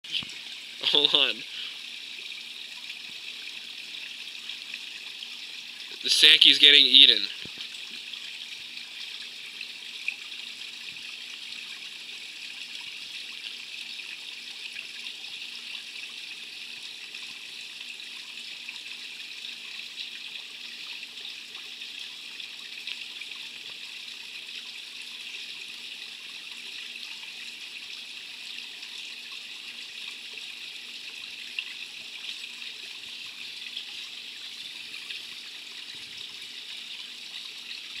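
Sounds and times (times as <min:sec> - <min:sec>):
pond water trickling: 0:00.0 - 0:38.0.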